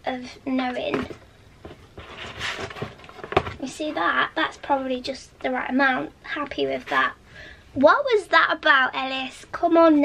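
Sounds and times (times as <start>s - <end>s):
twine scraping on cardboard: 1.9s - 4.0s.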